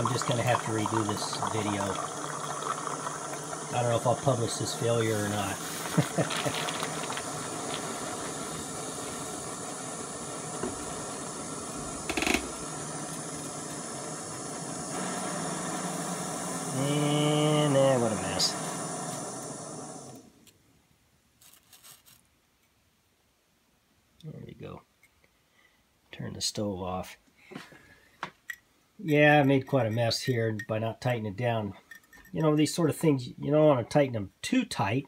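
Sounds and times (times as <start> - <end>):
steam leaking: 0.0 - 20.3
gas stove burner hissing: 0.0 - 20.4.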